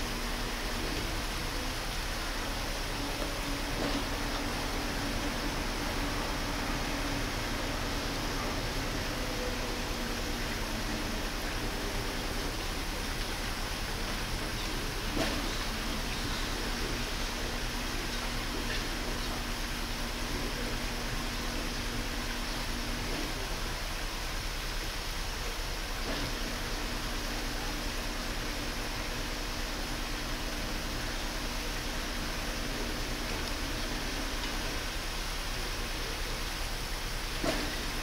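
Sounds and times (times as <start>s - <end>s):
faint low hum: 0.0s - 24.2s.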